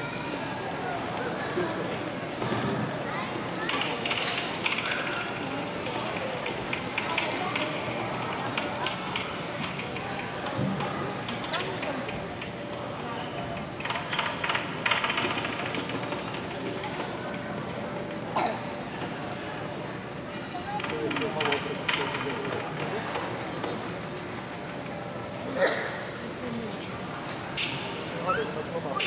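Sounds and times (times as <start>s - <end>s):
crowd chatter in echoing hall: 0.0s - 29.0s.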